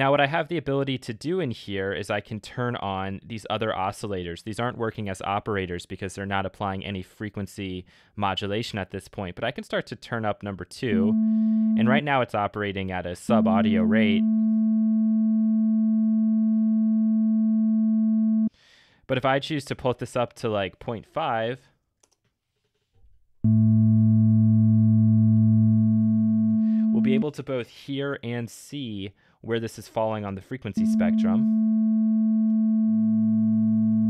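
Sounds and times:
synthesizer sine-wave note: 0:10.9 - 0:12.2, 0:13.3 - 0:18.5, 0:23.4 - 0:27.2, 0:30.8 - 0:34.0.

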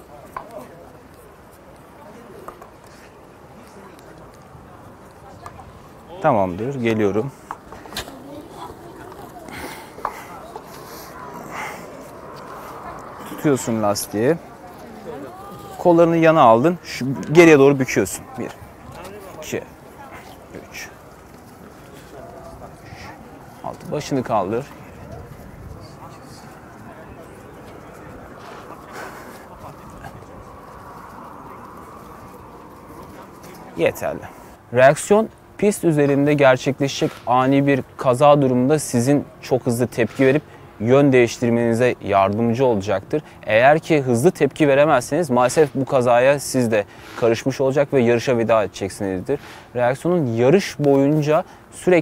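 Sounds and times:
faint distant voices: 0:00.0 - 0:52.0.

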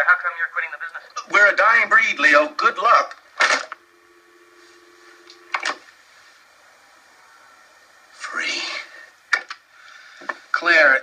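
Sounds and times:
telephone dial tone: 0:03.6 - 0:05.8.

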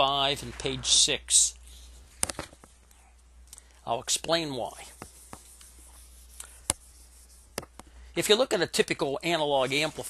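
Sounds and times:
eraser rubbing on whiteboard: 0:04.4 - 0:07.8.

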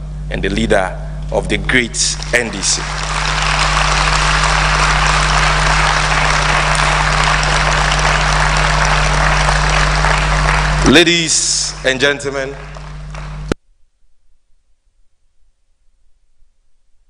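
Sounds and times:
audience applauding: 0:02.1 - 0:13.6.

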